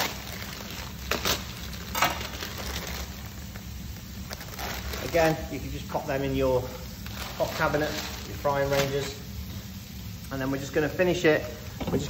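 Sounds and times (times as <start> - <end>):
plastic bag crinkling: 0.0 - 6.0, 6.6 - 9.2
fish sizzling in a frying pan: 0.0 - 10.1.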